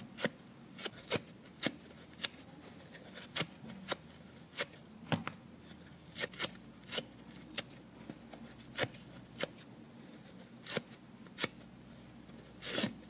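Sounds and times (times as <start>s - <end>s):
sponge foam ripping: 12.6s - 13.0s.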